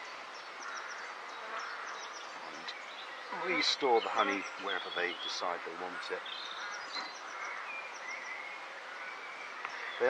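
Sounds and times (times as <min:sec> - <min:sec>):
honeybees buzzing: 0:00.0 - 0:10.0.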